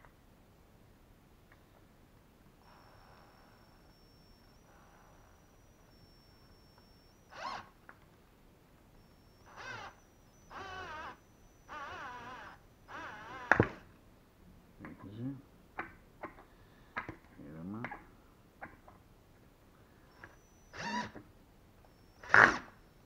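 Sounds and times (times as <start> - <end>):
drill driving screw into wood: 2.7 - 7.8, 9.0 - 13.9, 20.1 - 21.2, 21.9 - 22.8.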